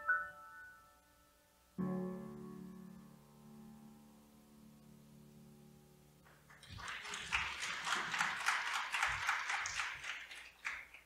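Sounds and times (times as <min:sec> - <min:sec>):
piano chord: 0:00.0 - 0:06.2
congregation applauding: 0:06.2 - 0:11.0.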